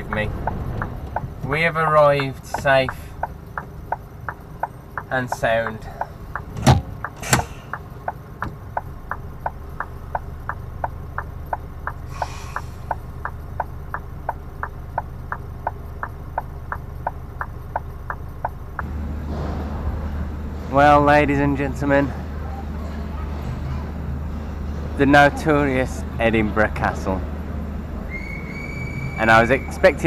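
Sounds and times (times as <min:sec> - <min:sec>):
indicator relay ticking: 0:00.0 - 0:18.9
diesel engine idling: 0:00.0 - 0:30.0
sharp knocks: 0:06.4 - 0:07.8
short hiss: 0:12.1 - 0:12.9.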